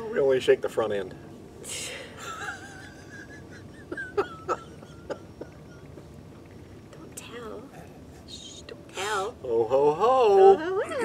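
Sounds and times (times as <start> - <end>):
stifled laughter: 2.2 - 6.1.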